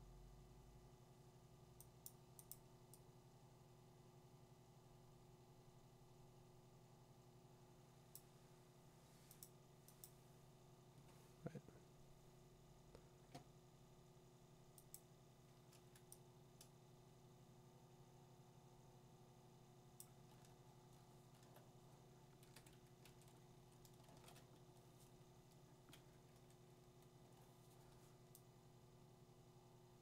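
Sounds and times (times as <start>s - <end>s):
low steady hum: 0.0s - 30.0s
computer mouse clicks: 1.8s - 3.1s, 9.3s - 10.2s, 14.7s - 16.8s, 20.0s - 28.5s.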